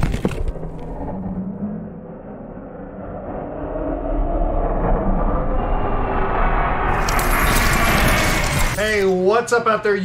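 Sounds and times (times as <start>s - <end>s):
low rumbling swell: 1.1s - 6.9s
shatter effect: 6.9s - 9.0s.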